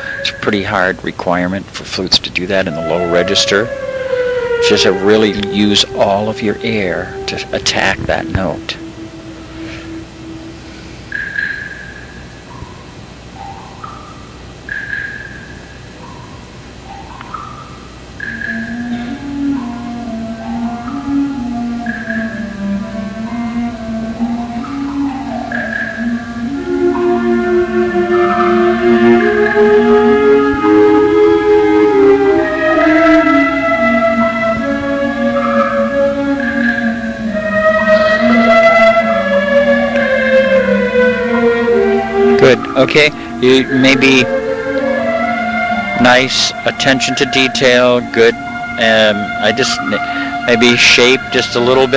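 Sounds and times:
wind ensemble playing: 0:00.0 - 0:14.7, 0:15.6 - 0:51.9.

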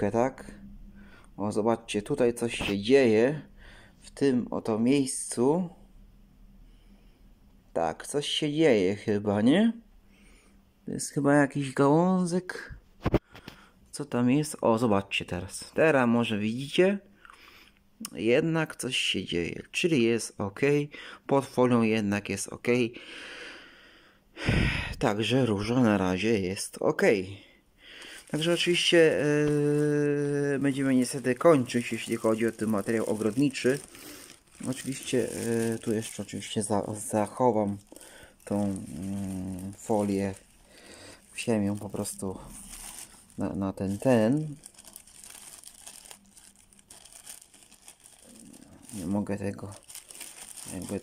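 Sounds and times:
man breathing: 0:00.9 - 0:01.4, 0:03.5 - 0:04.0, 0:23.0 - 0:25.0, 0:27.5 - 0:28.3, 0:33.8 - 0:34.6, 0:37.9 - 0:38.5, 0:40.6 - 0:41.4
plastic bag crinkling: 0:28.0 - 0:51.0.

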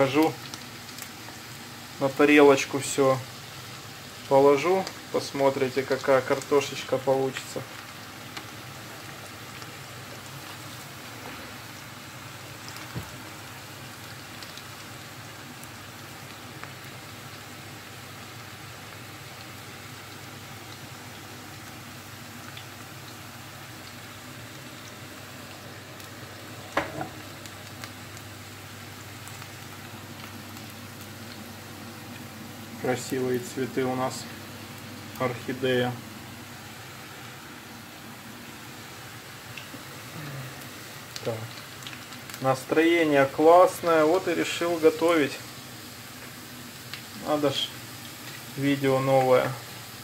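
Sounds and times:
potatoes sizzling in oil: 0:00.0 - 0:50.0
range hood fan hum: 0:00.0 - 0:50.0.

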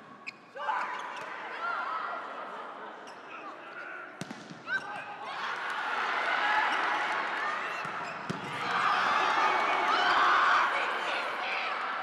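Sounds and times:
volleyball hits: 0:04.2 - 0:05.0, 0:07.7 - 0:08.8
crowd shouting and cheering: 0:04.6 - 0:12.0.

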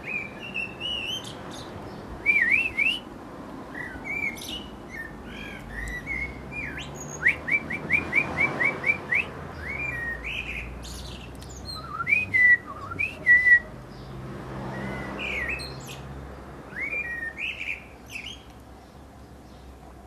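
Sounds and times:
blackbird singing: 0:00.0 - 0:03.1, 0:03.7 - 0:19.8.

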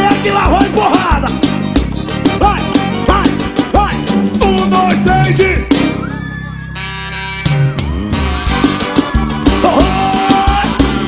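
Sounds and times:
drums: 0:00.0 - 0:11.0
live band music: 0:00.0 - 0:11.0.

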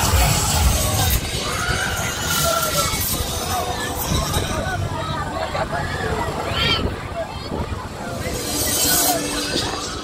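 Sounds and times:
music playing: 0:00.0 - 0:06.5, 0:07.8 - 0:10.0
ride noise: 0:00.0 - 0:10.0
voices: 0:00.0 - 0:10.0.

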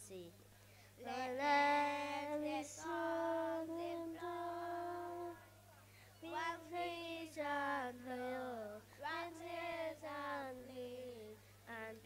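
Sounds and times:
low electrical hum: 0:00.0 - 0:12.0
child singing into a microphone: 0:01.0 - 0:05.4, 0:06.2 - 0:12.0.

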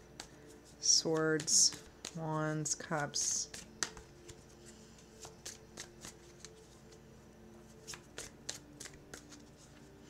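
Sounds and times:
cards shuffling: 0:00.1 - 0:02.2, 0:03.2 - 0:07.0, 0:07.7 - 0:10.0.

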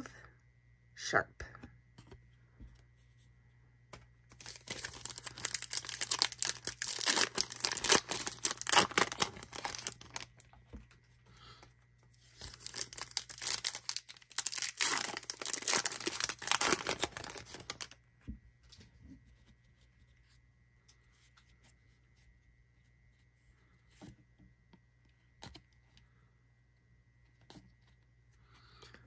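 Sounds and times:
card pack wrapper tearing and crinkling: 0:04.3 - 0:10.6, 0:12.3 - 0:18.0.

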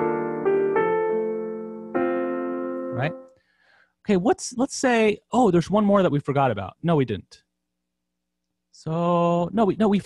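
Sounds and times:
piano chord: 0:00.0 - 0:03.4.

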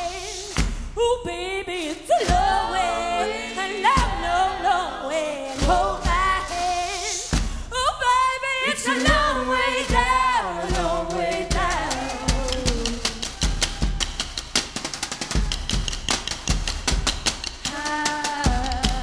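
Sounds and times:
low stomping drum beats: 0:00.0 - 0:01.4, 0:02.3 - 0:03.0, 0:03.8 - 0:04.7, 0:05.5 - 0:08.2, 0:08.8 - 0:19.0.

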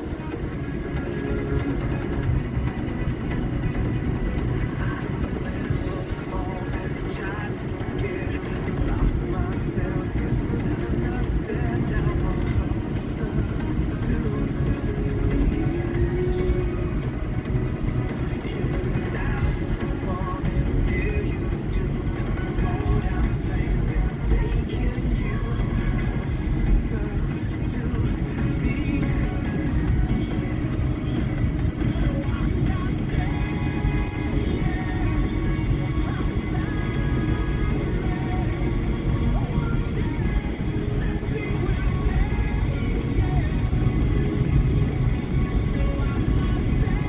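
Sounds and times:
car cabin road rumble: 0:00.0 - 0:47.0
faint voices: 0:00.0 - 0:47.0
music: 0:00.0 - 0:47.0.

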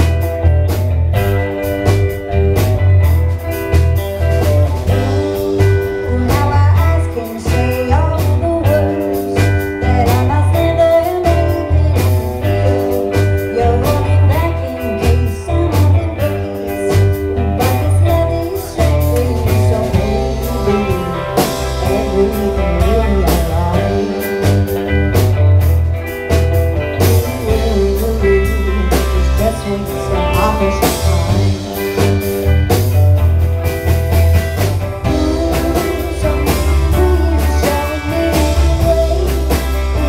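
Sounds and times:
bass guitar: 0:00.0 - 0:40.0
electric guitars: 0:00.0 - 0:40.0.

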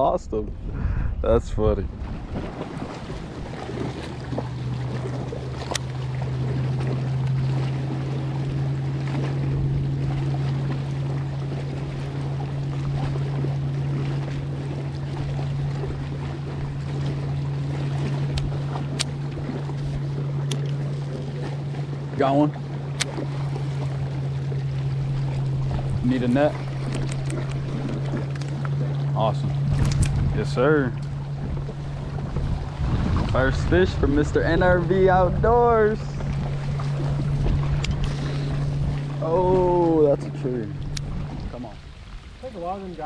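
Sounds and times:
wind noise: 0:00.0 - 0:04.1, 0:29.6 - 0:30.6, 0:31.3 - 0:39.1
boat motor humming: 0:00.0 - 0:43.0
water: 0:00.0 - 0:43.0
wind buffeting microphone: 0:00.0 - 0:43.0.

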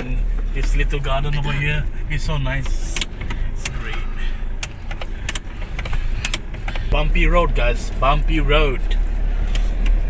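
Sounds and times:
rattles and knocks of vehicle body: 0:00.0 - 0:10.0
vehicle engine and road rumble: 0:00.0 - 0:10.0.

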